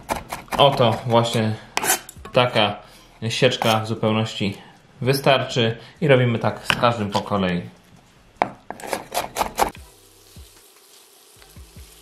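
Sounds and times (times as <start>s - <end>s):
knife chopping on wooden board: 0.0s - 1.0s, 8.4s - 9.8s.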